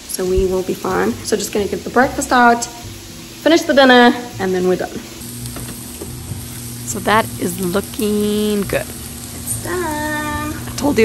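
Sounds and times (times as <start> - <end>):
chicken sizzling in a frying pan: 0.0 - 11.0.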